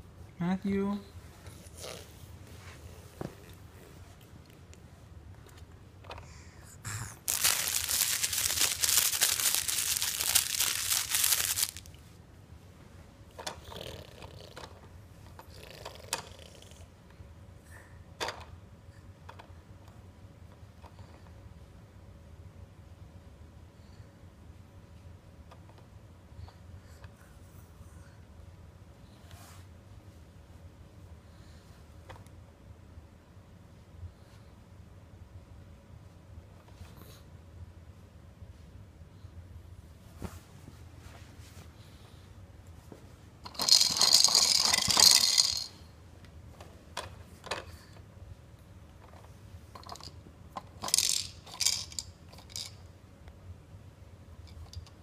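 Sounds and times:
low room hum: 0:00.0 - 0:55.0
plastic toys clicking and rubbing: 0:07.0 - 0:12.0, 0:43.4 - 0:45.8, 0:46.6 - 0:47.8, 0:49.0 - 0:52.8.

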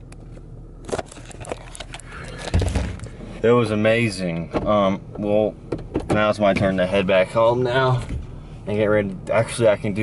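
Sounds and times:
car engine hum from cabin: 0:00.0 - 0:10.0.

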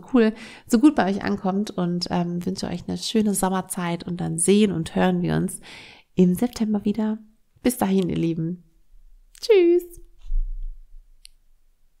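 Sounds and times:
deep dull thump: 0:10.2 - 0:11.1.

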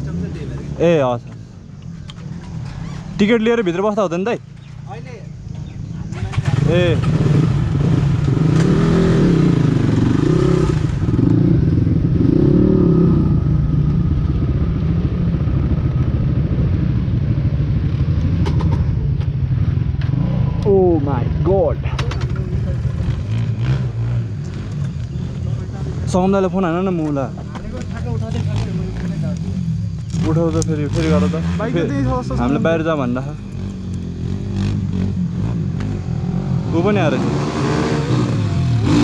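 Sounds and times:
dirt bike engine running: 0:01.9 - 0:39.0.

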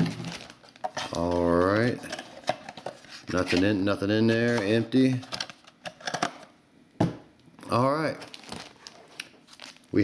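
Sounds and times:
cardboard and foil packs handled: 0:00.0 - 0:06.2, 0:07.8 - 0:10.0.

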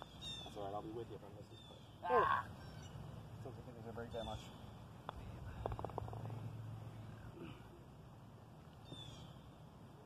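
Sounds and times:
descending bird chirp: 0:00.0 - 0:03.2
low steady rumble: 0:01.4 - 0:10.0.

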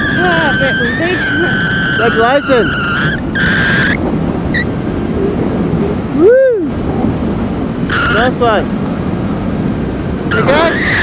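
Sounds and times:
person calling out: 0:00.0 - 0:03.0
high whistling tone: 0:00.0 - 0:04.0
wind rushing over microphone: 0:00.0 - 0:11.0.

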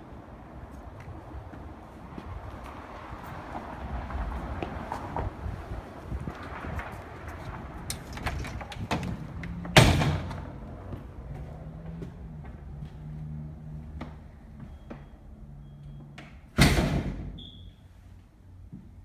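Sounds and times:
door banging shut: 0:08.1 - 0:10.5, 0:16.6 - 0:17.4.

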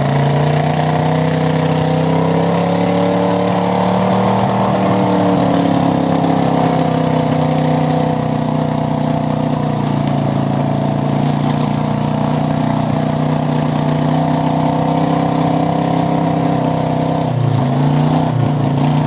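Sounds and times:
engine running under load in mud: 0:00.0 - 0:19.0.

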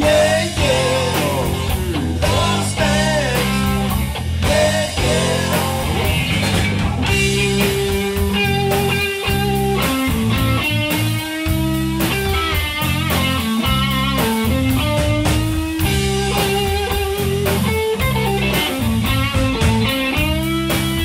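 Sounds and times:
drum kit: 0:00.0 - 0:21.0
electric bass: 0:00.0 - 0:21.0
electric lead guitar: 0:00.0 - 0:21.0.

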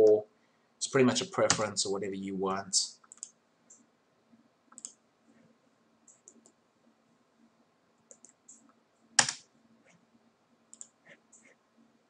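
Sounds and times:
mouse and keyboard clicks: 0:08.1 - 0:09.4, 0:10.7 - 0:11.5.

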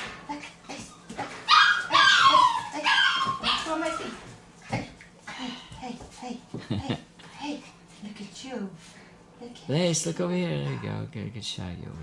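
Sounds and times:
puppy whining: 0:00.4 - 0:04.2.

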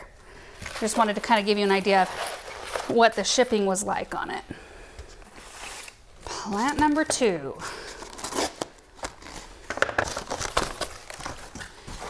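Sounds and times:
cardboard crinkling and rustling: 0:00.6 - 0:03.8, 0:07.9 - 0:12.0.

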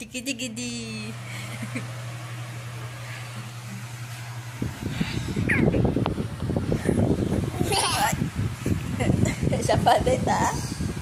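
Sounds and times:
electric fan humming and blowing: 0:00.0 - 0:11.0.

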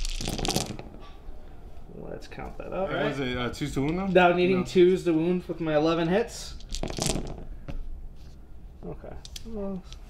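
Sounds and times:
dice clattering on a mat: 0:00.0 - 0:01.0, 0:06.6 - 0:07.6.

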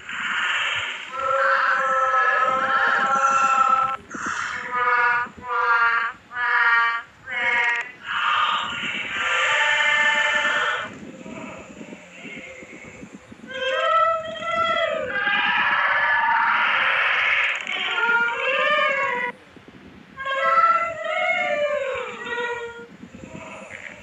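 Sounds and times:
high-pitched wailing cries: 0:01.0 - 0:19.3, 0:20.2 - 0:24.0.

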